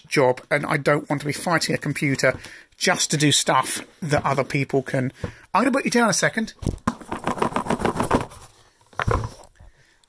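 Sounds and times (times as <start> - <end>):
phone rustling against microphone: 6.6 - 9.7.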